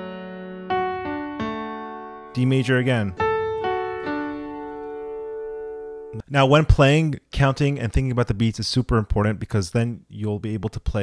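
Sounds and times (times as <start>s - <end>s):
piano notes ringing: 0.0s - 6.3s.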